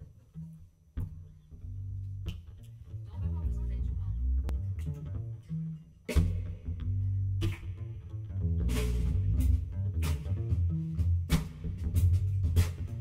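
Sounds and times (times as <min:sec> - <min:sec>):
double bass plucked notes: 0:00.0 - 0:13.0.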